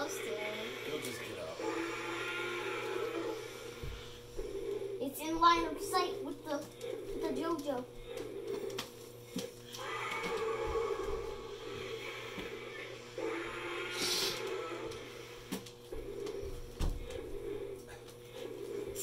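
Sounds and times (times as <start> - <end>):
growling and roaring sound effects: 0.0 - 6.0, 9.7 - 16.4
toy motor hum: 0.0 - 19.0.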